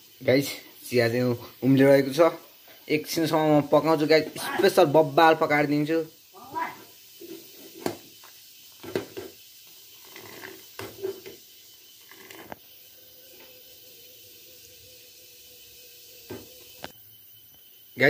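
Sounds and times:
faint steady hiss: 0:00.0 - 0:18.0
thin hum: 0:10.0 - 0:18.0.

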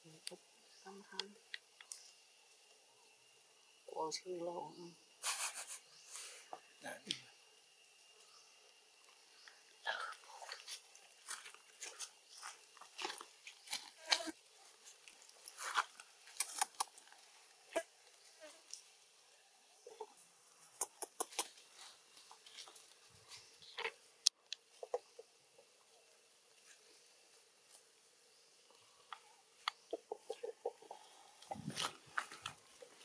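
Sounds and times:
high-pitched insect whine: 0:00.0 - 0:33.0.

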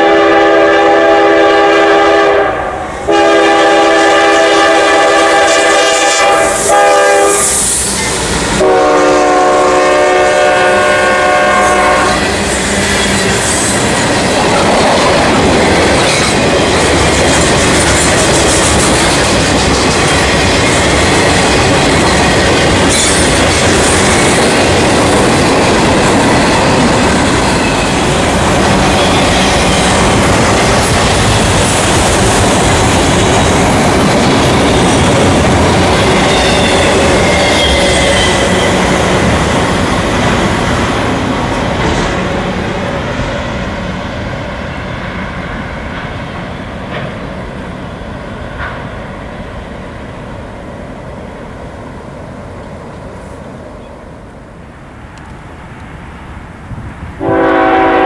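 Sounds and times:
locomotive air horn blasts: 0:00.0 - 0:07.7, 0:08.6 - 0:12.3, 0:57.2 - 0:58.0
train wheels clacking over rails: 0:03.1 - 0:49.6.

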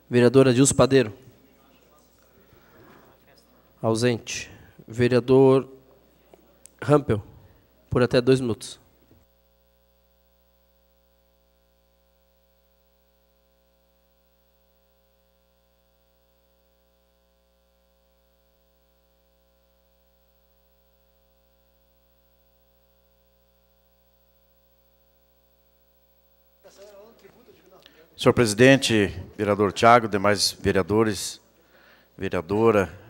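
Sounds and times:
faint electrical hum: 0:00.0 - 0:33.0.

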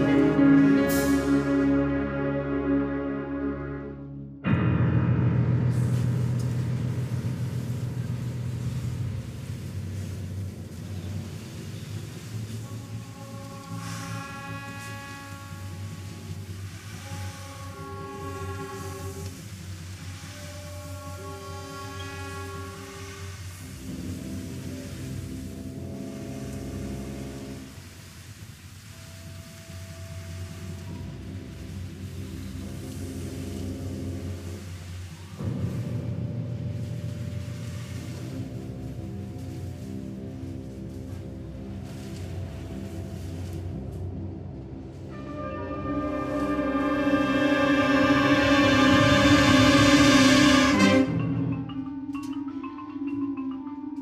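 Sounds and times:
orchestral low chord: 0:00.0 - 0:28.1, 0:28.8 - 0:52.9.

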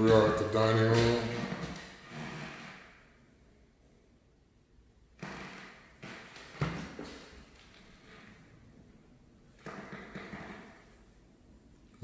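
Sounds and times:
footsteps on hardwood floor: 0:06.0 - 0:07.8.

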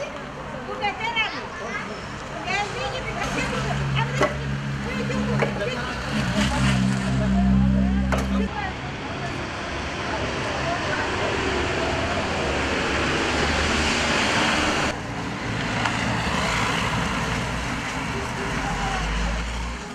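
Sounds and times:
passing road traffic: 0:00.0 - 0:19.9.

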